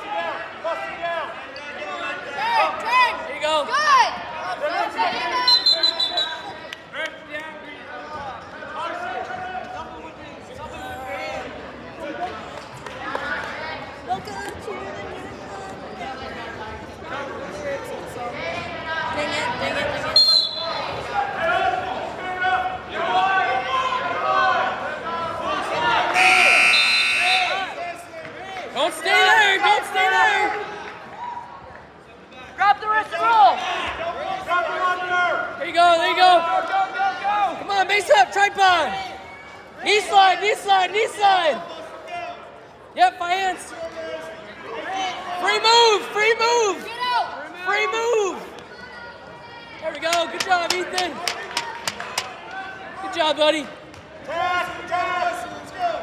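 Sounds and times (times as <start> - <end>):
voices shouting: 25.7 - 27.8
timer buzzer: 26.2 - 27.6
hand claps: 50.1 - 52.4.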